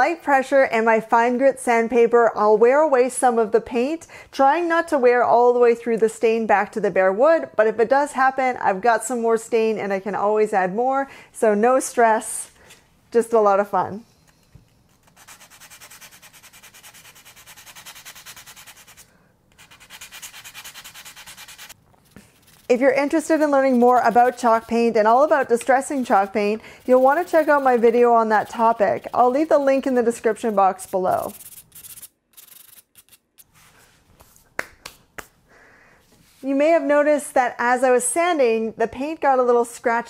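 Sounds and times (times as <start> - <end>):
sandpaper rubbing on wood: 15.0 - 33.5
hands rubbing on fabric: 31.2 - 35.4.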